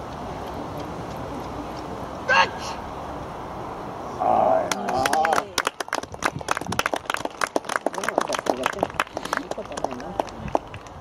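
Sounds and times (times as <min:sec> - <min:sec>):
loud human call: 0:02.3 - 0:02.8.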